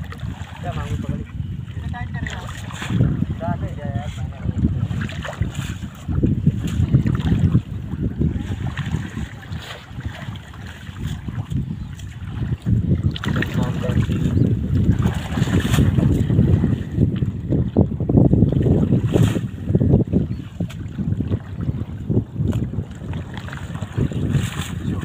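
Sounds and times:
water sloshing and splashing: 0.0 - 25.0
wind rumbling on microphone: 0.0 - 25.0.

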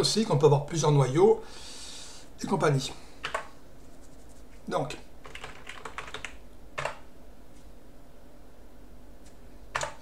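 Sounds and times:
computer keyboard keystrokes: 3.2 - 3.5, 5.2 - 7.0, 9.7 - 10.0.

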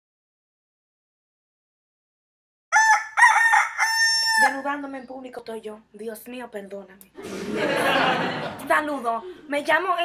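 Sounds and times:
rooster crowing: 2.7 - 4.7.

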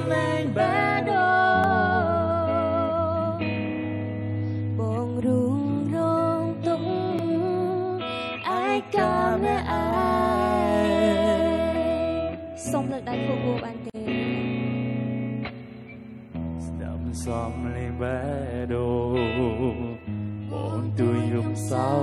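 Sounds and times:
person singing with vibrato: 0.0 - 3.8, 4.7 - 14.4, 16.7 - 22.0
guitar accompaniment: 0.0 - 22.0
sustained bass notes: 9.0 - 22.0.

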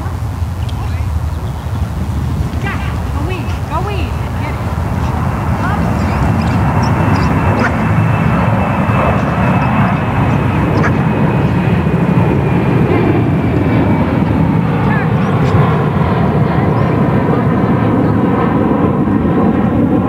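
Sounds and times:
airplane engine rumble: 0.0 - 20.0
high engine whine: 0.0 - 20.0.

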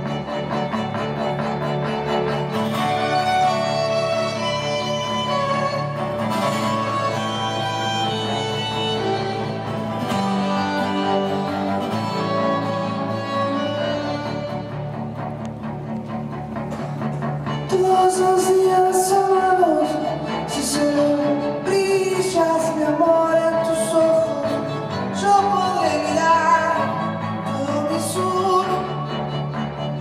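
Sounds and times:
acoustic guitar: 0.0 - 30.0
bowed violins: 0.0 - 30.0.

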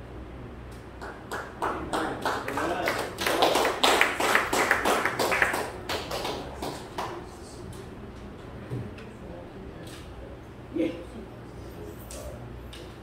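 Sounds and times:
sharp taps or claps: 0.7 - 7.2.

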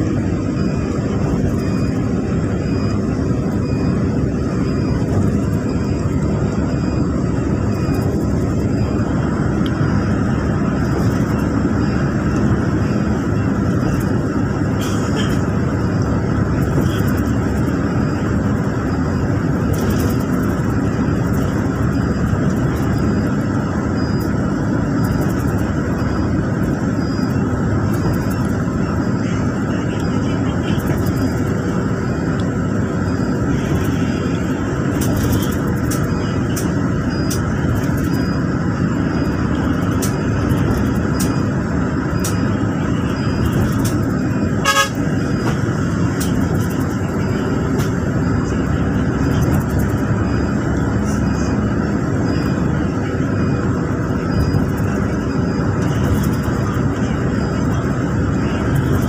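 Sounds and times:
bus engine and tyre rumble: 0.0 - 59.0.

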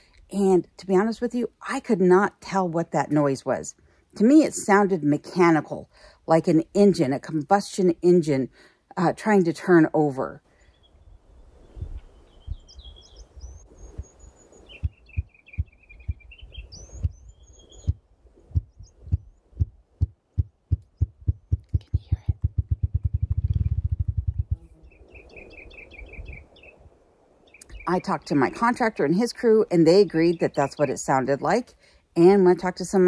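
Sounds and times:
small birds chirping: 10.5 - 19.4, 24.5 - 28.6
grouse drumming with wings: 16.9 - 24.6.

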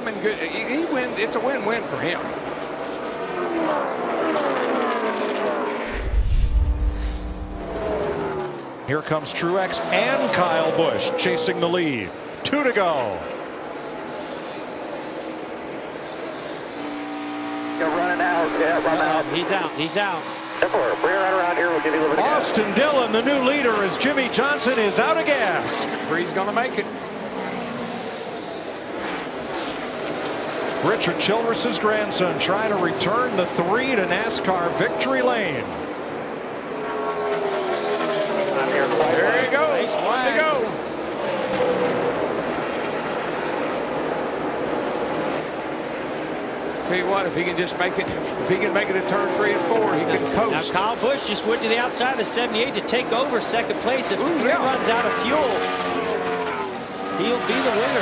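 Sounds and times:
race car engines passing: 0.0 - 58.0
deep engine rumble: 5.9 - 8.6.

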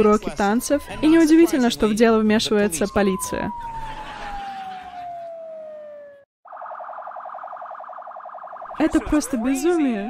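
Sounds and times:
fast warbling siren: 0.4 - 10.0
siren wailing down in pitch: 2.6 - 10.0.

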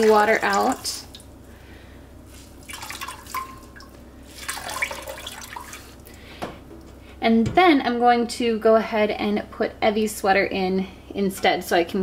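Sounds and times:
water dripping into pot: 2.7 - 5.8.

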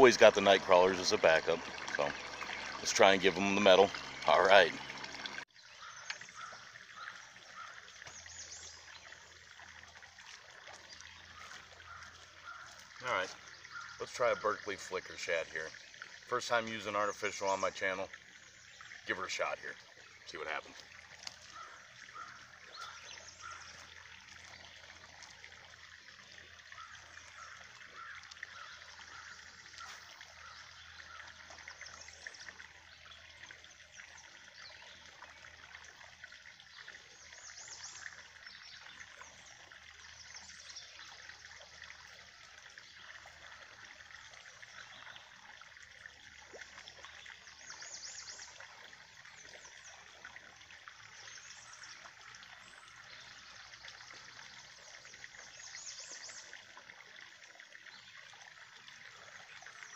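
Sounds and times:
water trickling into a pond: 0.0 - 59.9.

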